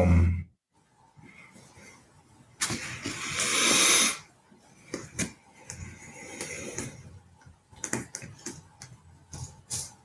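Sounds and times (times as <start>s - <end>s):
hissing noise over microphone: 2.6s - 4.3s.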